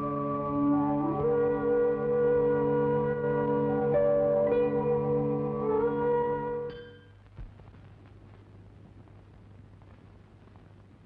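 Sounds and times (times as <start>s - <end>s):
film soundtrack hiss and hum: 0.0s - 11.0s.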